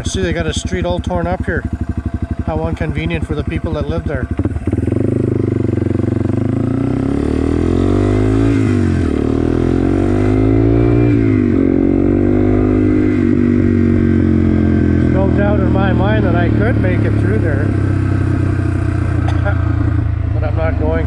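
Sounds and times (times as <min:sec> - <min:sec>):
motorcycle engine accelerating: 0:00.0 - 0:21.0.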